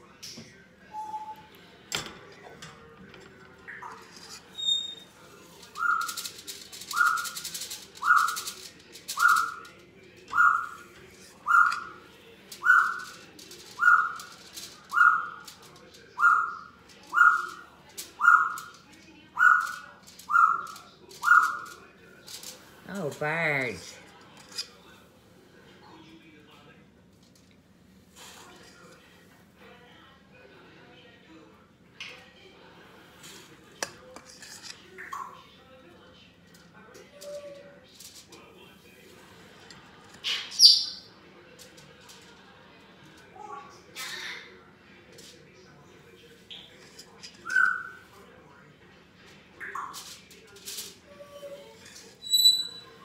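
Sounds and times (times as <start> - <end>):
pet bird whistling: 1.0 - 1.5
crackling rustles: 3.7 - 16.0, 16.8 - 23.2, 49.9 - 52.3.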